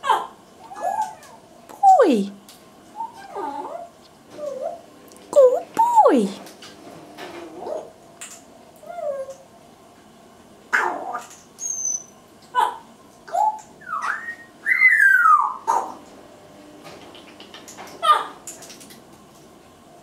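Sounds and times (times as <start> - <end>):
parrot whistling and chattering: 11.6 - 15.9.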